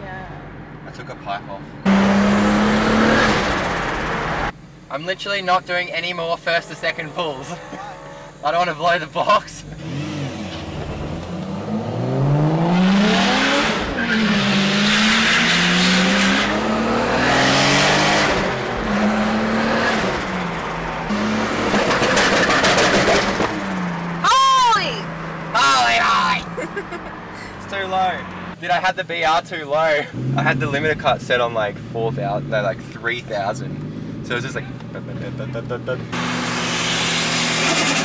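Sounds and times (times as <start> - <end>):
car engine accelerating: 1.8 - 4.7, 6.0 - 28.7, 30.0 - 38.0.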